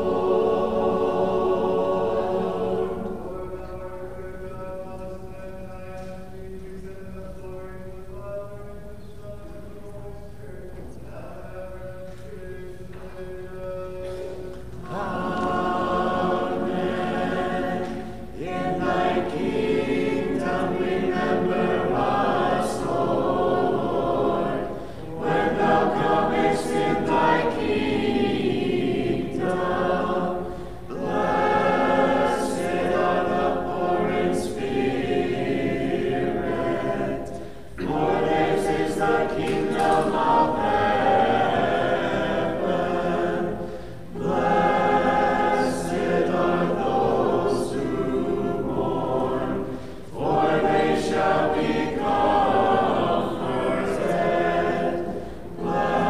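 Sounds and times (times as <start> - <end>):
choir singing unaccompanied chant: 0.0 - 56.0.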